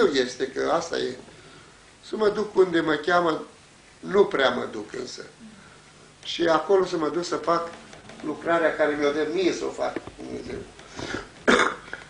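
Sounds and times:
man coughing: 11.0 - 12.0.

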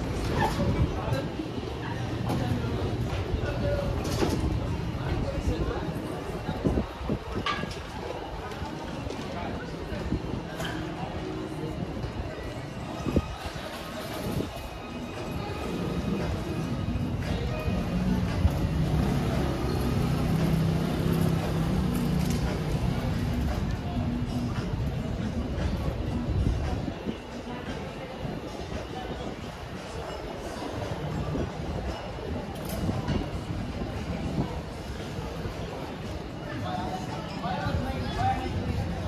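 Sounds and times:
indistinct chatter: 0.0 - 39.0
low city rumble: 0.0 - 39.0
street noise: 0.0 - 39.0.

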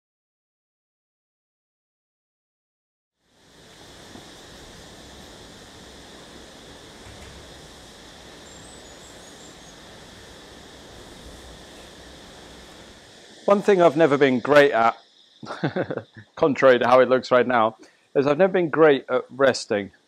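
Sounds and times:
outdoor ambience hiss: 3.2 - 20.0
faint high chirps: 8.3 - 10.4.

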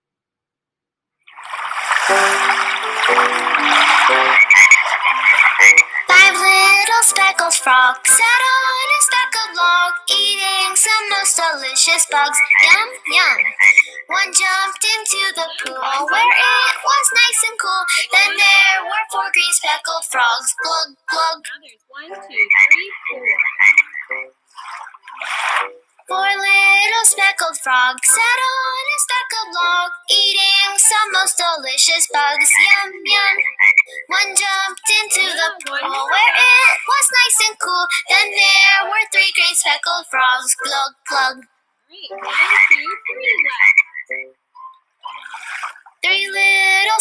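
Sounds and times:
frog croaking: 2.4 - 6.2, 12.3 - 14.1, 22.3 - 25.9, 33.4 - 34.0, 42.2 - 44.4.

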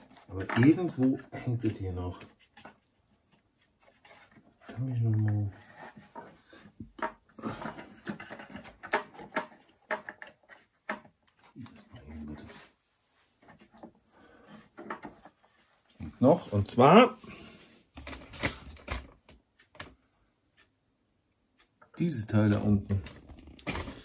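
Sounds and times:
hands clicking and scraping parts: 0.0 - 12.5, 13.4 - 15.8, 17.9 - 20.0.

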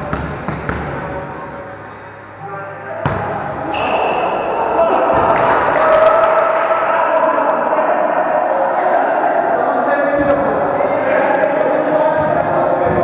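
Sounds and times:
players' voices echoing: 0.0 - 13.0
shoe squeak: 3.7 - 4.2.

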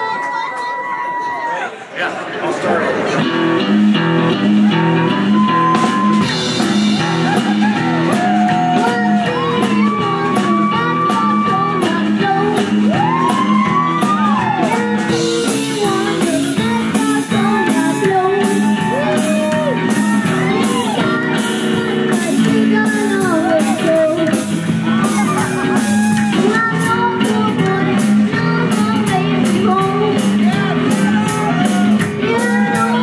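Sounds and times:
electric guitar: 3.1 - 33.0
upright double bass: 3.1 - 33.0
drum kit with cymbal strokes: 3.2 - 33.0
person singing: 4.7 - 33.0.

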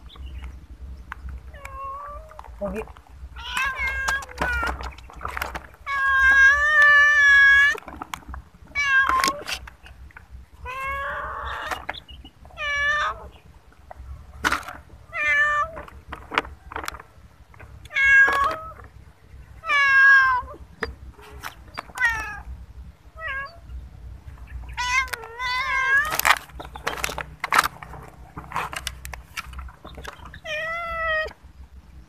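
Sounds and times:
cat meowing: 1.5 - 4.9, 5.8 - 7.8, 10.6 - 11.8, 12.5 - 13.3, 19.6 - 20.6, 23.2 - 23.6, 24.7 - 26.4, 30.4 - 31.4.

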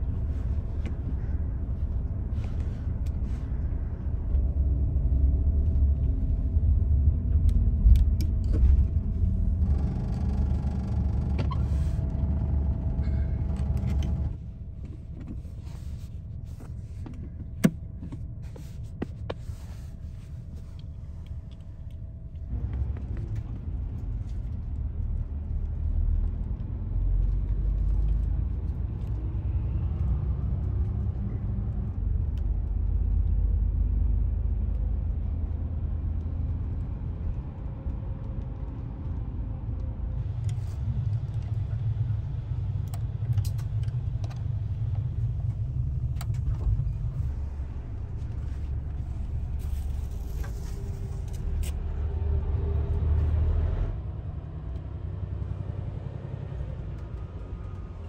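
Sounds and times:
coach engine and road noise: 0.0 - 58.0.

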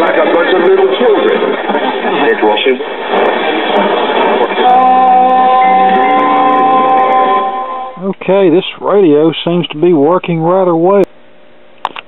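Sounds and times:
raspy radio music: 0.0 - 8.0.

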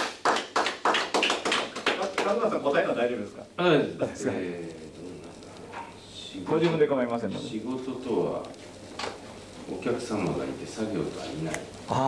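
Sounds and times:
hands clapping: 0.0 - 2.9.

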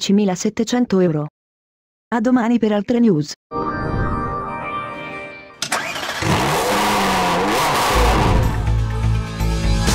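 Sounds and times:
car engine starting and revving: 5.6 - 9.2.

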